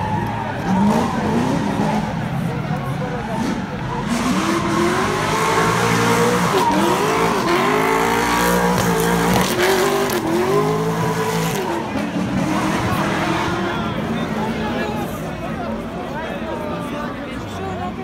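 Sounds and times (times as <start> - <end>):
car engine revving hard: 0.6 - 2.4, 3.2 - 14.5.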